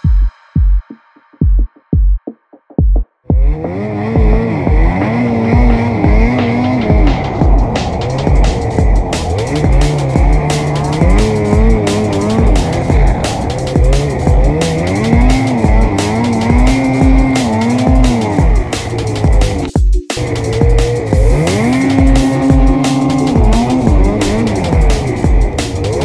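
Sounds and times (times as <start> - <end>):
music with steady beat: 0.0 - 26.0
snowmobile engine revving: 3.3 - 26.0.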